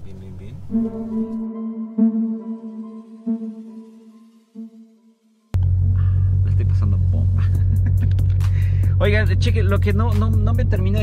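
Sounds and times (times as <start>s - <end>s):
car engine idling: 5.6s - 11.0s.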